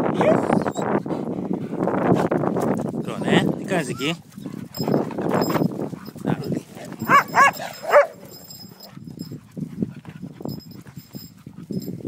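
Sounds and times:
dog yelping: 0.2s - 0.9s, 7.0s - 9.0s.

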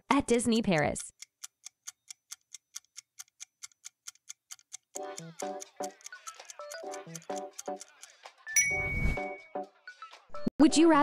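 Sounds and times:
fast clock-like ticking: 0.5s - 8.3s.

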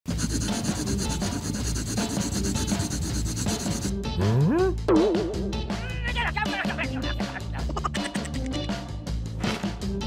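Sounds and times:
marker pen rubbing on skin: 0.1s - 3.9s.

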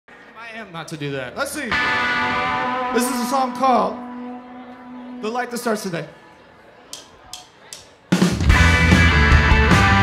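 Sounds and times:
band playing: 1.7s - 6.3s, 8.1s - 10.0s.

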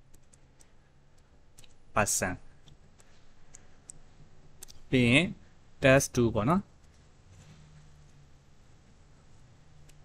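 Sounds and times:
man talking: 2.0s - 2.5s, 4.9s - 6.7s.

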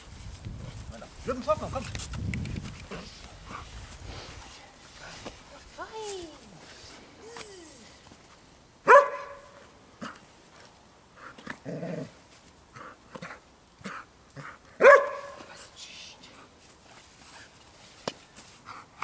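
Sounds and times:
dog barking: 8.8s - 9.6s, 14.8s - 15.4s.

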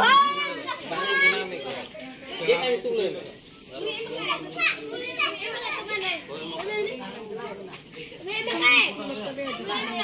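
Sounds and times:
child's high-pitched shout: 0.0s - 1.4s
children chattering and calling out: 0.0s - 10.0s.

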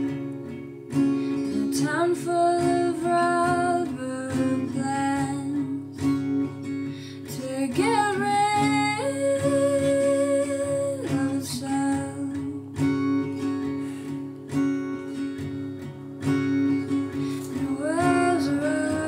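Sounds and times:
acoustic guitar strumming: 0.0s - 19.0s
woman singing softly: 1.4s - 13.3s, 17.1s - 19.0s.

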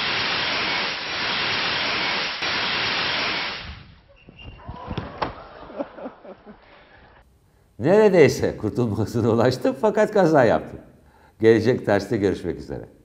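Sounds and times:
fire extinguisher hissing: 0.0s - 4.0s.

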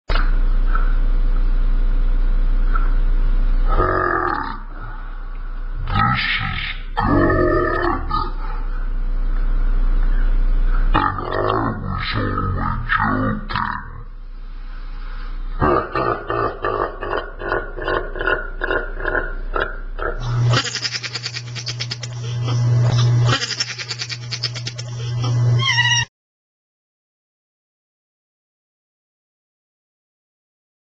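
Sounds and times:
steady low hum: 0.1s - 26.0s
low rattling voice-like drone: 3.6s - 14.2s, 15.5s - 25.4s
wordless vocal sounds: 3.7s - 8.9s, 10.9s - 14.1s.

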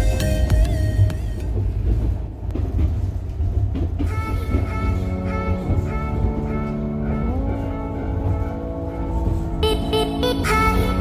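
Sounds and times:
electronic music: 0.0s - 2.1s, 4.1s - 11.0s
train running rumble: 0.0s - 11.0s.

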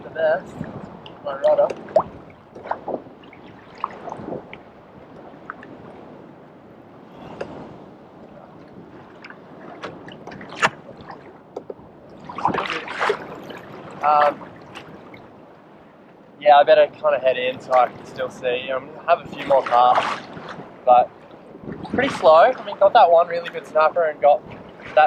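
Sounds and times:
sea water splashing against kayak: 0.4s - 16.2s, 17.4s - 25.0s
small knocks and ticks: 11.6s - 11.8s.

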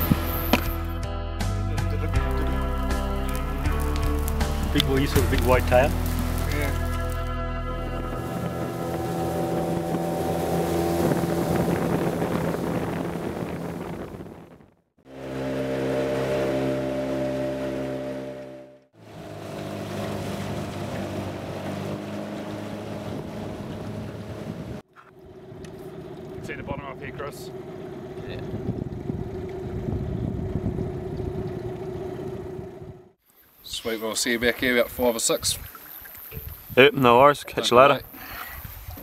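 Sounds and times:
outboard motor running: 0.0s - 0.9s, 1.8s - 33.2s.

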